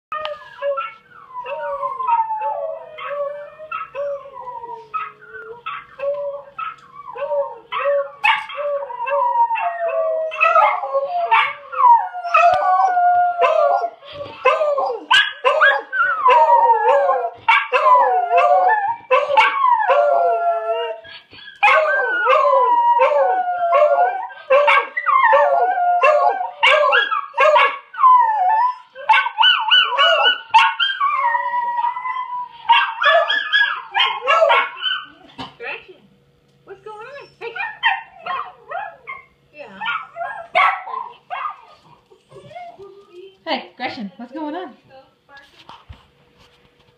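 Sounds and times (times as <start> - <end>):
recorded dog howls: 0.1 - 21.0, 21.6 - 35.1
dogs howling: 0.1 - 35.2, 37.0 - 43.1.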